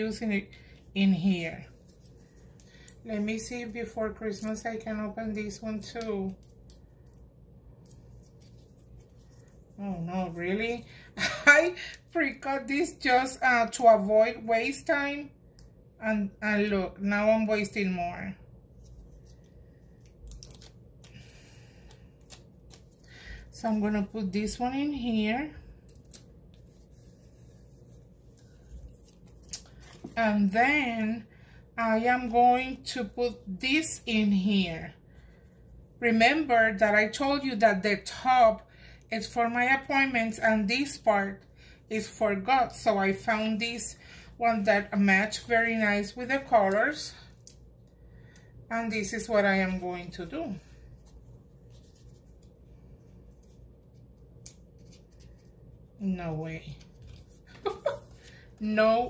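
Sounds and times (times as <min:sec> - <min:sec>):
low steady hum: 0:00.0 - 0:59.0
paper rustling: 0:01.7 - 0:02.6, 0:07.8 - 0:09.6, 0:25.9 - 0:30.2, 0:50.9 - 0:52.6, 0:56.6 - 0:58.6.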